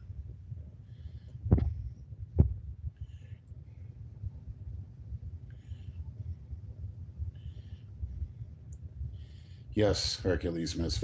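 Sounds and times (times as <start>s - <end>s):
low rumble: 0.0s - 11.0s
dull thumps on phone microphone: 1.5s - 1.8s, 2.4s - 2.6s.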